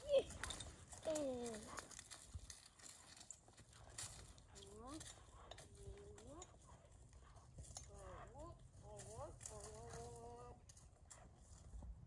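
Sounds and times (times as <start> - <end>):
horse hooves walking on dirt: 0.0 - 12.0.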